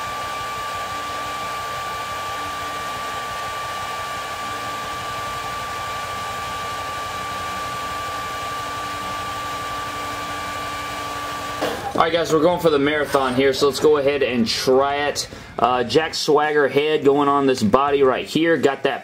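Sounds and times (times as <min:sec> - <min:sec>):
hair dryer running: 0:00.0 - 0:14.0.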